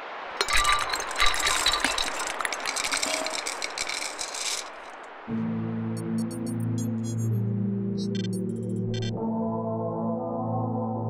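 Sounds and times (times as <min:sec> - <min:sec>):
glassy clinks and pings: 0:00.4 - 0:04.8.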